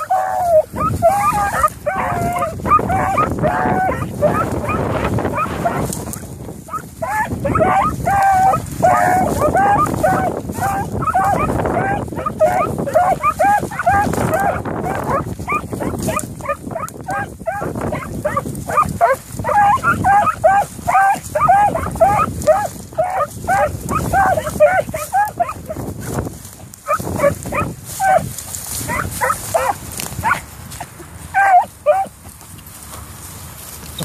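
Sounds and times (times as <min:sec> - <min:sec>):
hounds barking high and ringing: 0:00.0 - 0:25.8, 0:26.9 - 0:30.4, 0:31.4 - 0:32.1
wind buffeting microphone: 0:00.0 - 0:34.0.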